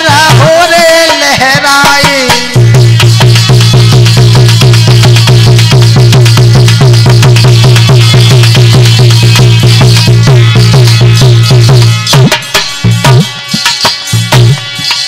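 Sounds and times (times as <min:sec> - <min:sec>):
hand drum fast beat: 0:00.0 - 0:15.0.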